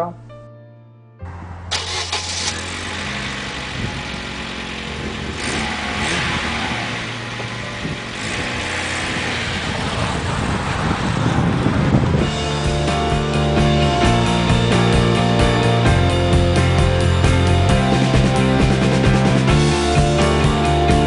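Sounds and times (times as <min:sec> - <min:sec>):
car engine starting and running: 0:01.3 - 0:21.0.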